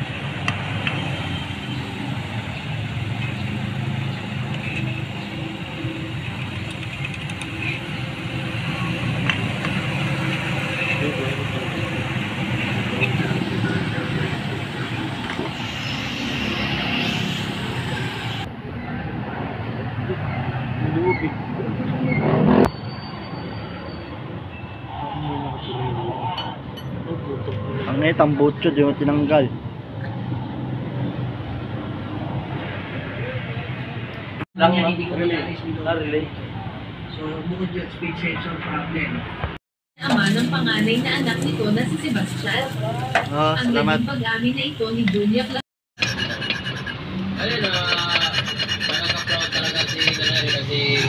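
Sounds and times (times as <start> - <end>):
motor vehicles humming: 0.0 - 51.0
indistinct voices: 24.9 - 27.6, 40.0 - 51.0.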